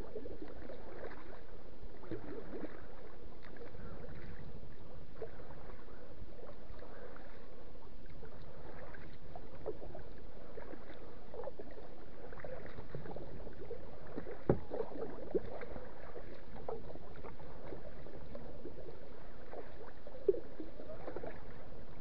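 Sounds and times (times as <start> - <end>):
steady wash of water: 0.0 - 7.6, 8.2 - 22.0
paddle splashing water: 0.1 - 4.4, 5.1 - 21.8.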